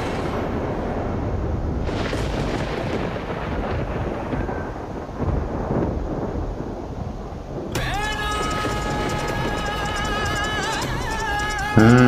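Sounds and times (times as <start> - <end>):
deep thunder-like rumble: 0.0 - 12.0
music: 7.8 - 12.0.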